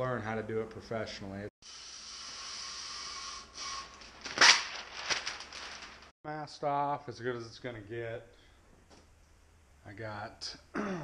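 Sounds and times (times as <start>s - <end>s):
masking paper drawn off rasping: 2.7s - 6.1s
paper sheet crinkling: 4.0s - 6.1s
paper tearing snap: 4.2s - 5.3s.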